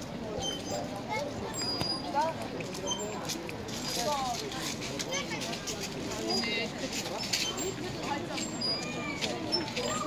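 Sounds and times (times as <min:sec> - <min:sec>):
children and adults talking: 0:00.0 - 0:10.0.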